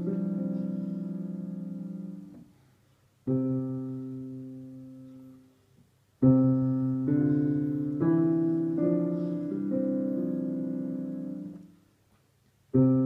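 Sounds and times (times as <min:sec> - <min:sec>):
digital piano chords: 0:00.0 - 0:02.5, 0:03.2 - 0:05.5, 0:06.2 - 0:11.8, 0:12.8 - 0:13.0.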